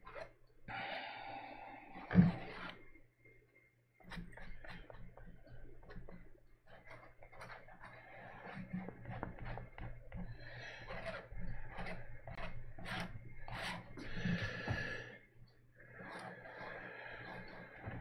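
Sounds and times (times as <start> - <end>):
fingers dabbing paint on canvas: 4.1 - 15.0, 16.0 - 18.0.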